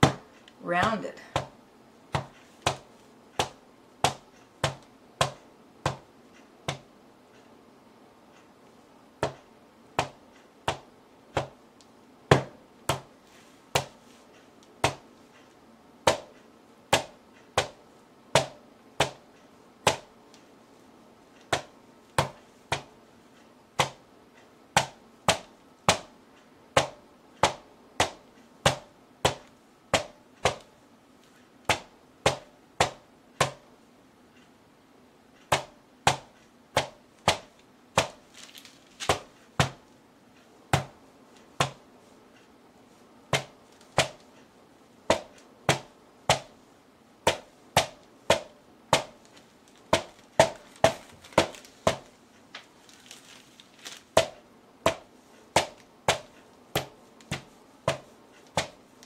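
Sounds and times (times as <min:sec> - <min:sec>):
rubber mallet smacking wet paint: 0:00.9 - 0:06.9, 0:09.2 - 0:11.6, 0:12.3 - 0:14.0, 0:14.8 - 0:15.1, 0:16.0 - 0:17.8, 0:18.4 - 0:20.1, 0:21.4 - 0:22.9, 0:23.8 - 0:24.0, 0:24.8 - 0:26.1, 0:26.8 - 0:30.7, 0:31.7 - 0:33.7, 0:35.4 - 0:38.3, 0:39.0 - 0:39.8, 0:40.7 - 0:41.8, 0:43.3 - 0:44.3, 0:45.1 - 0:46.6, 0:47.2 - 0:52.1, 0:54.2 - 0:59.0.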